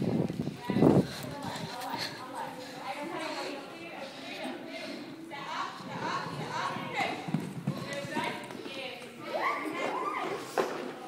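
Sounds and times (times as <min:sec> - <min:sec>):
horse hoofbeats on soft ground: 0:05.4 - 0:09.1.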